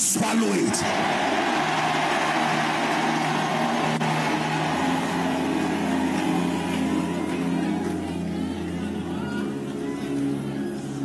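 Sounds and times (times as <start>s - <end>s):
congregation roar: 0.8s - 10.4s
keyboard sustained low chords: 0.8s - 11.0s.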